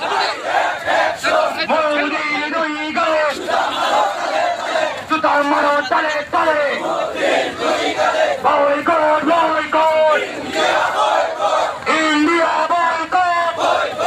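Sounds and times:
crowd chanting slogans: 0.0 - 14.0.

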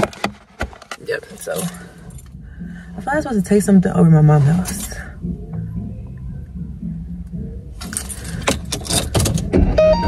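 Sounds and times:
low steady car rumble: 0.9 - 10.0
car keys jangling: 7.8 - 9.5.

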